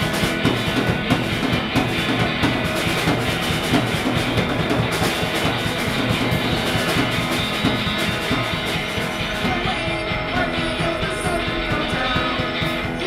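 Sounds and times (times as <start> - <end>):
driving drum beat: 0.0 - 13.0
live rock band playing: 0.0 - 13.0.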